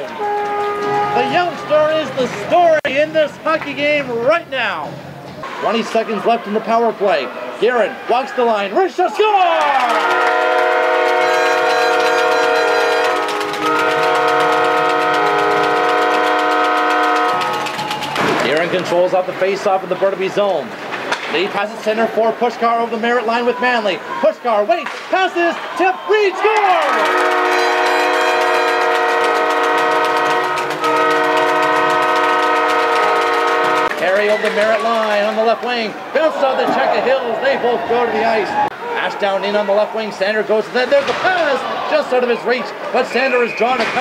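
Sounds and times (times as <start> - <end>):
arena goal horn blasts: 0.0 - 2.2, 9.8 - 17.6, 26.7 - 34.4.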